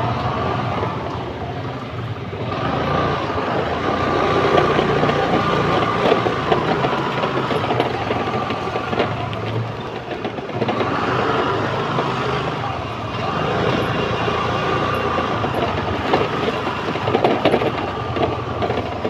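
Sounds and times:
vehicle engines running: 0:00.0 - 0:19.0.

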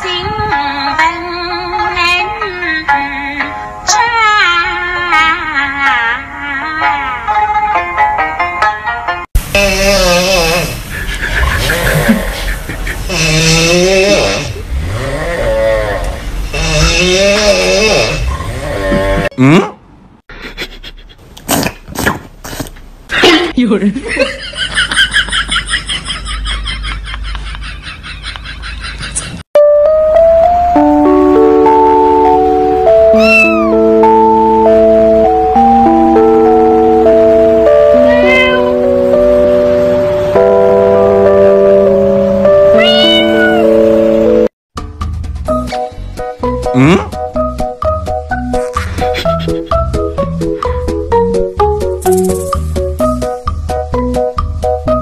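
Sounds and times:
breathy noisy sounds: 0:09.4 - 0:19.8
background music with chords: 0:29.6 - 0:55.0
person voicing wavering held tones: 0:32.9 - 0:34.8
cat meowing: 0:33.1 - 0:33.8, 0:37.9 - 0:38.8, 0:42.7 - 0:43.8.

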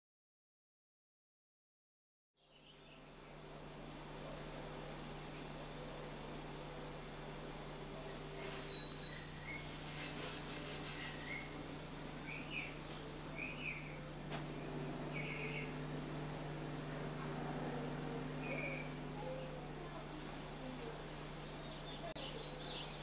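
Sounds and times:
background hiss: 0:02.4 - 0:23.0
birds chirping: 0:02.4 - 0:23.0
faint low hum: 0:02.4 - 0:23.0.

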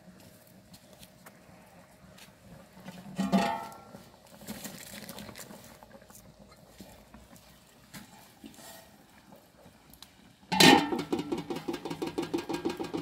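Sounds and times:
pot lid clanging on pot rim: 0:03.2 - 0:03.8, 0:10.5 - 0:13.0.

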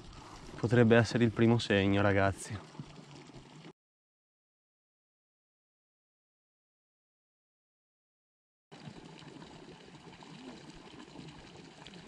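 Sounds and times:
faint outdoor hiss at a lake: 0:00.0 - 0:03.7, 0:08.8 - 0:12.0.

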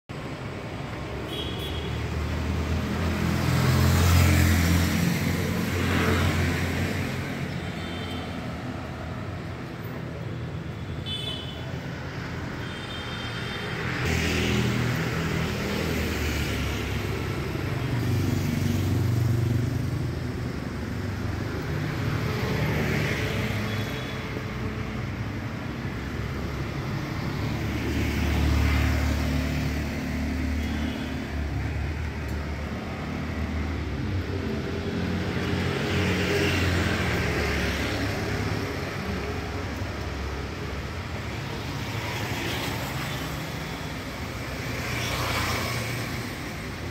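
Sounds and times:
scooters and cars passing: 0:00.1 - 0:46.9.

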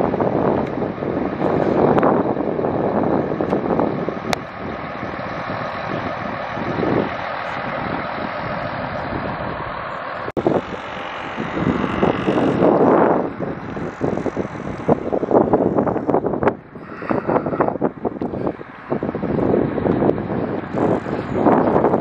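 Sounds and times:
wind rushing over microphone: 0:00.0 - 0:22.0.

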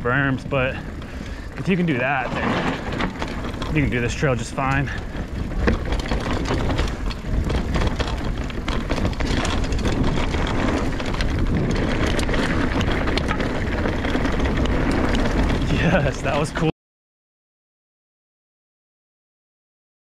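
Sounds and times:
bike clicks and rattles: 0:00.0 - 0:16.7
tyres rolling over gravel: 0:00.0 - 0:16.7
wind rushing on microphone: 0:00.0 - 0:16.7.

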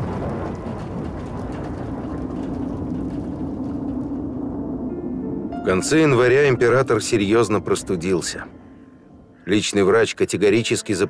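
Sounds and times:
dense rumbling noise: 0:00.0 - 0:10.0
sustained low drone: 0:02.4 - 0:09.7.

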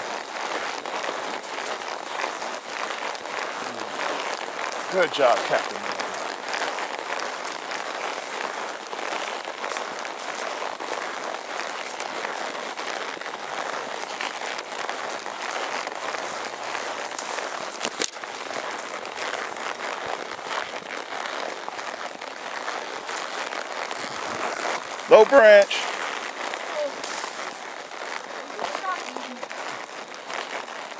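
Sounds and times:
leaves and branches rustling: 0:00.0 - 0:30.9.

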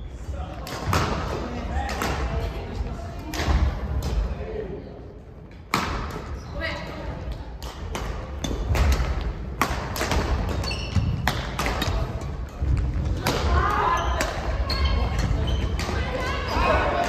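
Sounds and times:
rackets striking shuttlecock: 0:07.2 - 0:13.6.

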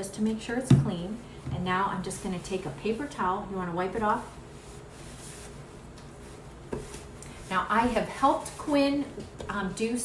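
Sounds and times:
paper towel rubbing chalkboard: 0:01.7 - 0:10.0.

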